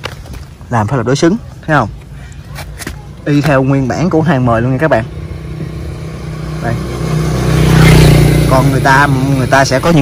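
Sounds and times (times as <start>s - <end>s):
vehicle engine running: 4.8s - 10.0s.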